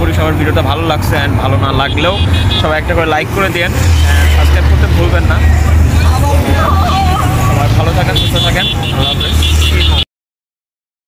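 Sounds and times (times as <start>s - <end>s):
man talking: 0.0s - 10.0s
road traffic: 0.0s - 10.1s.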